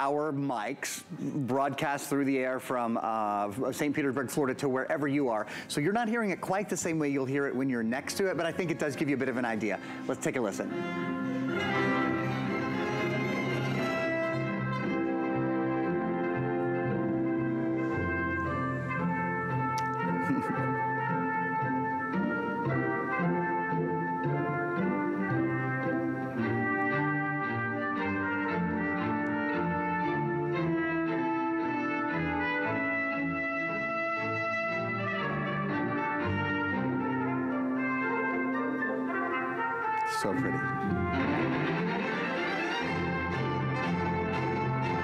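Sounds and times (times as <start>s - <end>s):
orchestral music with brass: 1.6s - 45.0s.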